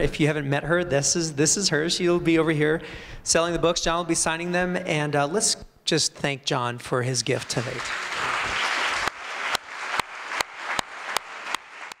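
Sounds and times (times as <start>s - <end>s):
audience applauding: 7.4s - 12.0s.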